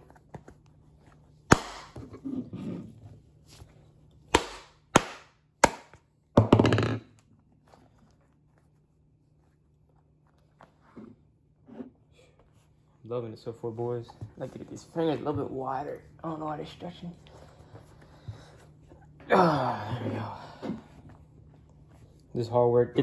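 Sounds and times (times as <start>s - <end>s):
mallet smacking leather glove: 1.5s - 2.1s, 4.3s - 6.5s.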